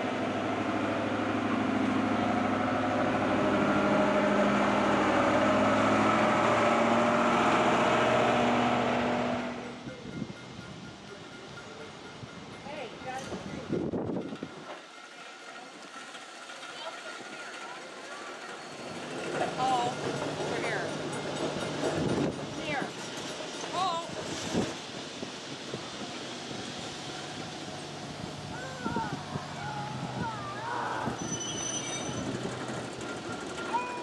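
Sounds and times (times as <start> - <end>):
electric streetcar hum: 0.0 - 34.0
trolleybus driving: 0.0 - 34.0.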